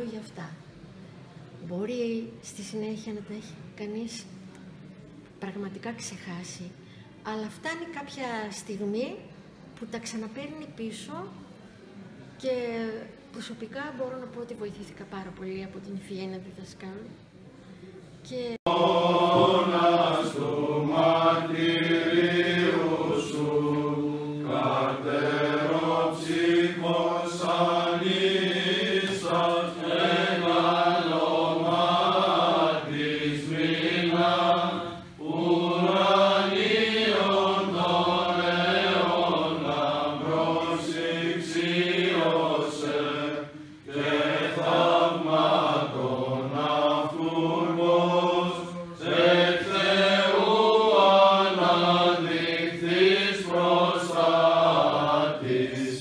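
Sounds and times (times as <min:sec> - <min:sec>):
men chanting a hymn: 0:18.7 - 0:56.0.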